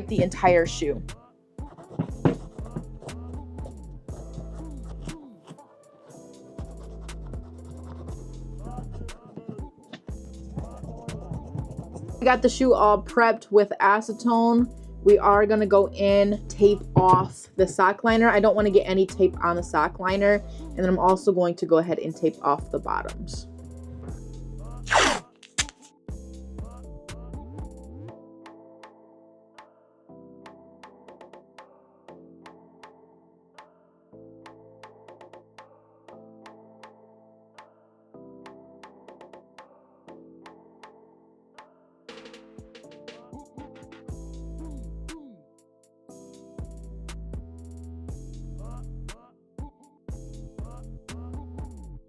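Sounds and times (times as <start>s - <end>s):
drum beat: 0.0s - 0.8s, 1.6s - 5.0s, 9.3s - 12.0s
background music: 0.0s - 52.0s
tape ripping: 24.9s - 25.9s.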